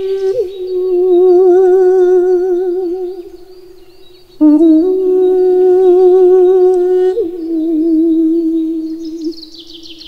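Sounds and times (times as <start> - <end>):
man singing held wordless note: 0.0 - 3.4, 4.4 - 9.4.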